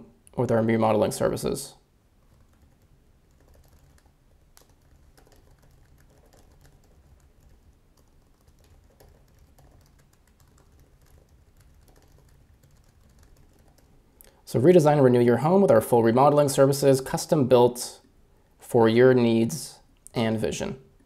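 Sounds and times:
computer keyboard typing: 2.2s - 14.0s.

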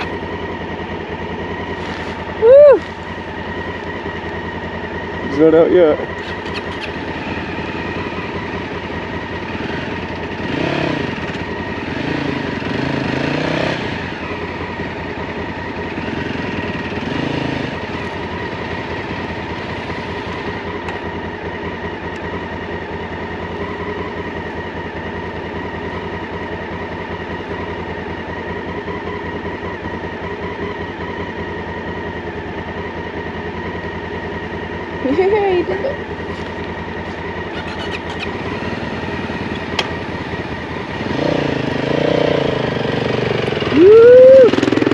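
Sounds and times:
motorcycle engine idling: 0.0s - 44.9s
voices: 5.2s - 7.0s, 35.0s - 36.2s.

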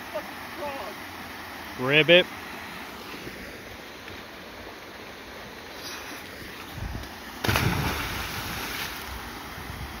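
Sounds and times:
small waterfall rushing: 0.0s - 10.0s
loud splash into water: 7.4s - 9.0s.

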